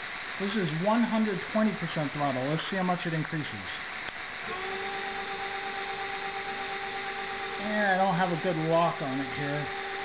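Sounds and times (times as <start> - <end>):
electric motor whine: 4.4 - 10.0.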